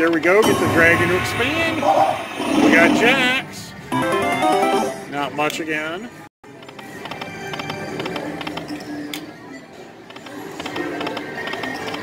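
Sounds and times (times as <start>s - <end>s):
slot machine reel-spin music: 0.4s - 5.0s.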